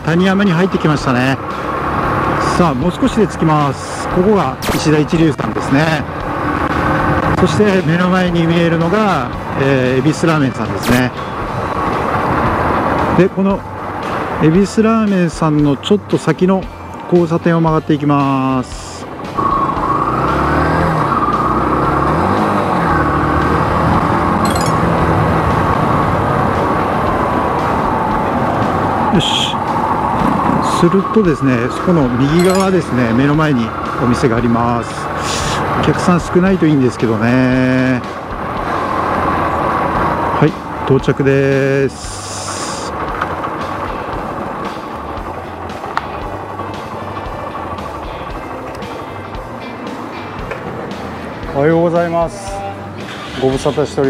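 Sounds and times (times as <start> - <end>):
vehicle and road noise: 0.0 - 54.0
sharp click: 4.6 - 4.9, 10.8 - 11.1.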